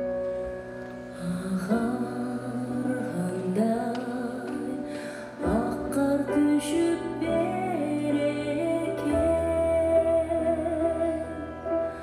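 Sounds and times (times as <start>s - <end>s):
grand piano: 0.0s - 12.0s
woman singing: 1.1s - 12.0s.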